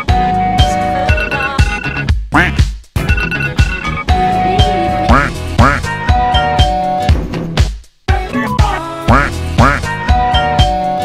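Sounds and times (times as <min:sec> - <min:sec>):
electronic house music: 0:00.6 - 0:06.8, 0:08.1 - 0:10.7
quack-like sounds: 0:02.4 - 0:02.6, 0:05.1 - 0:05.9, 0:09.1 - 0:09.9.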